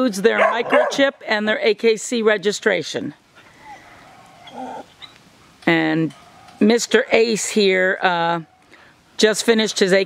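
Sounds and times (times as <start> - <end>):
puppy whining: 3.5 - 5.2
puppy whimper or grunt: 3.6 - 5.1.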